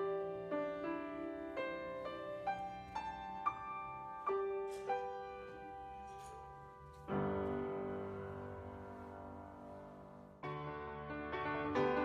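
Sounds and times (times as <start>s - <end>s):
solo piano played slowly: 0.0s - 12.0s.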